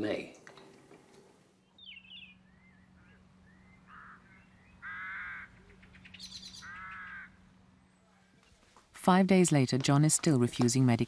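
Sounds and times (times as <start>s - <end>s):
small birds chirping: 1.6s - 8.7s
crows cawing: 2.9s - 7.6s.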